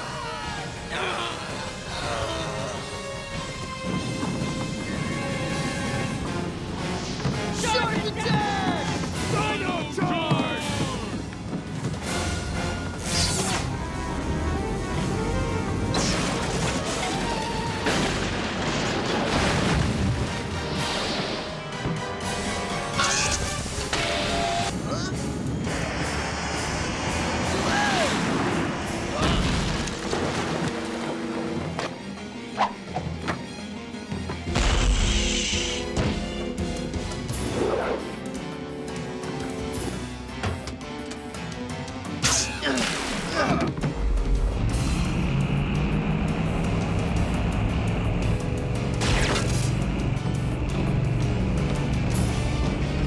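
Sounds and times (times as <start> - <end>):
characters grunting and yelling: 0.0 - 3.0, 7.6 - 11.2
action music score: 0.0 - 53.0
booms and crash effects: 34.5 - 35.5.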